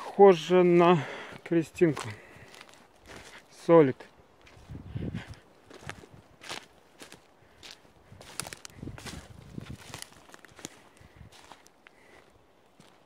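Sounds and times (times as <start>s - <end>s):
footsteps crunching twigs and needles: 0.1s - 13.0s.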